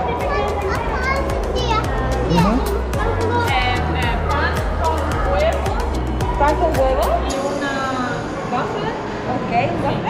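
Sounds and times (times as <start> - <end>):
background chatter: 0.0 - 10.0
children talking and calling: 0.0 - 10.0.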